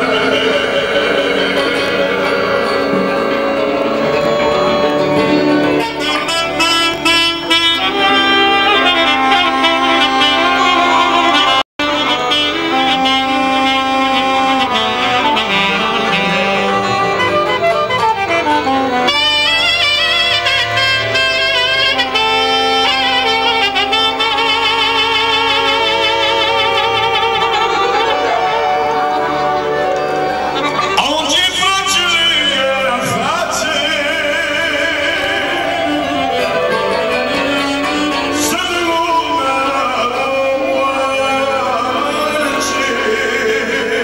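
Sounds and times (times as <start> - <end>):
accordion accompaniment: 0.0 - 44.0
saxophone folk melody: 0.0 - 44.0.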